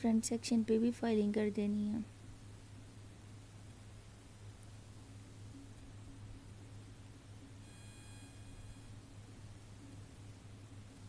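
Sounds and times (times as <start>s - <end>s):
steady low hum: 0.0s - 11.0s
faint electronic beep: 7.6s - 9.2s.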